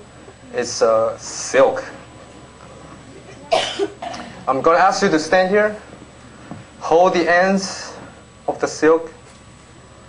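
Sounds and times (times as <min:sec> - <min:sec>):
man coughing: 0:03.4 - 0:04.4.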